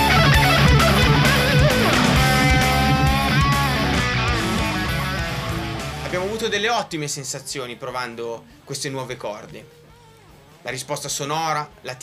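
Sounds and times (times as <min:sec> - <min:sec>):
electric guitar lead notes: 0:00.0 - 0:06.2.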